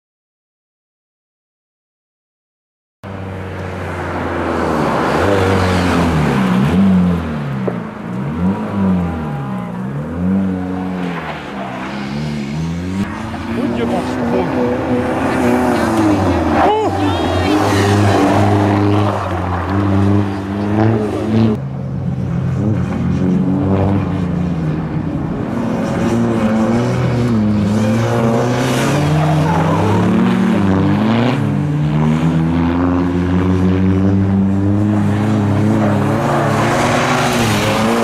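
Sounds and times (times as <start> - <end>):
rally car engine revving: 3.1 - 38.0
tyre squeal: 28.9 - 30.3.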